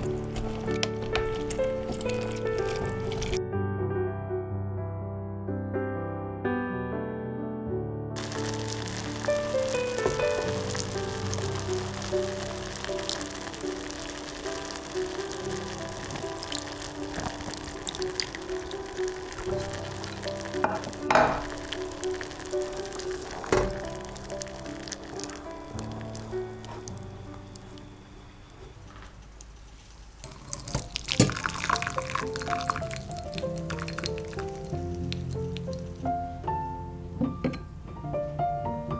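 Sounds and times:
syrup bubbling and sizzling: 0.0s - 3.4s, 8.2s - 28.4s, 29.4s - 36.3s
soft piano music: 0.0s - 38.9s.

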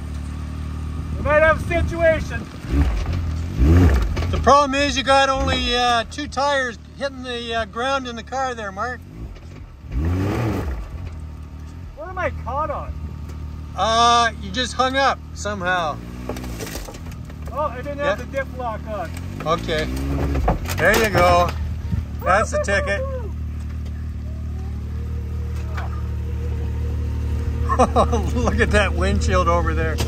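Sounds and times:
engine revving: 0.0s - 30.0s.

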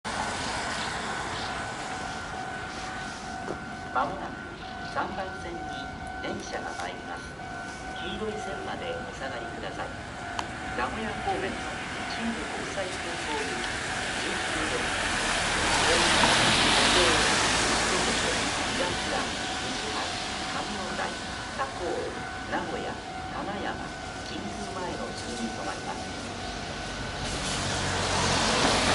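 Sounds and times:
platform announcement: 0.0s - 26.7s.

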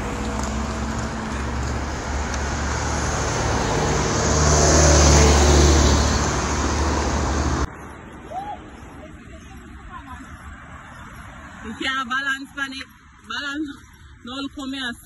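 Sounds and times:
car passing by: 0.0s - 7.7s
low traffic rumble: 0.0s - 15.0s.

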